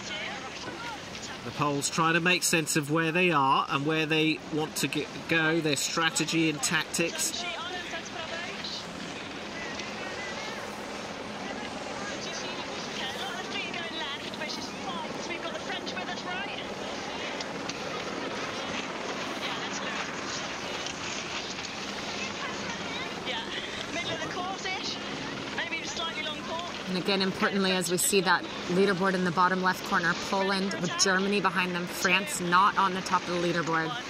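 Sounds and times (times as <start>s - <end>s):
faint indistinct voices: 5.8s - 34.0s.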